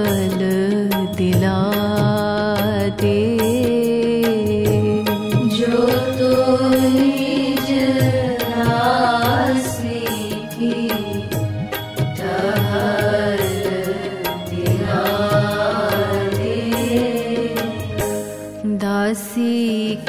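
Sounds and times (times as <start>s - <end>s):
percussion strokes: 0.0s - 19.6s
steady held drone: 4.9s - 20.0s
chant-like sung melody: 5.4s - 18.4s.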